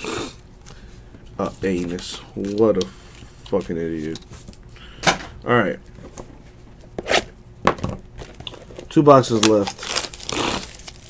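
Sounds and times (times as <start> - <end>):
plastic wrap crinkling: 8.1 - 11.0.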